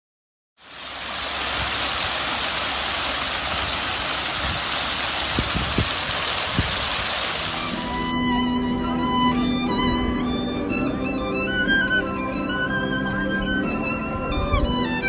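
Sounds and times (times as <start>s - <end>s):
fountain jets splashing on paving: 0.6s - 8.2s.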